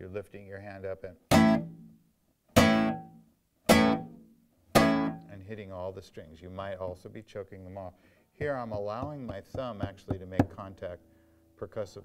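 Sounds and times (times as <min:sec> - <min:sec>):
flamenco guitar chord strikes: 0:03.7 - 0:04.2.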